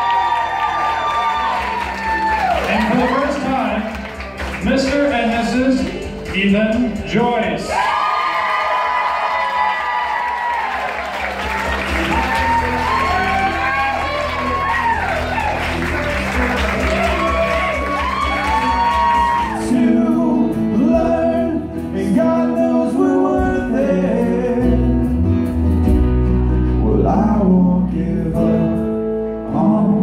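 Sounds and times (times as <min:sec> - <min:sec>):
guests cheering and whooping: 0:00.0 - 0:03.9, 0:07.6 - 0:20.0
people clapping: 0:00.0 - 0:07.0, 0:07.7 - 0:19.7
live band playing: 0:00.0 - 0:08.2, 0:10.8 - 0:30.0
loud music with bass line: 0:11.2 - 0:22.3, 0:23.3 - 0:30.0.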